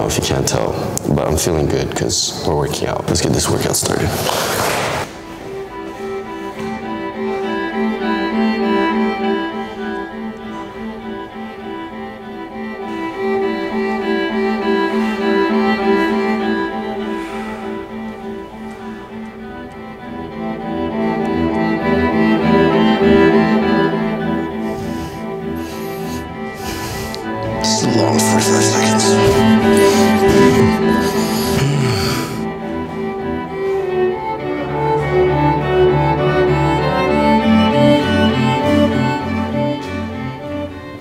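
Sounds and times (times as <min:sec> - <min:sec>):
sustained bowed string music: 0:05.2 - 0:41.0.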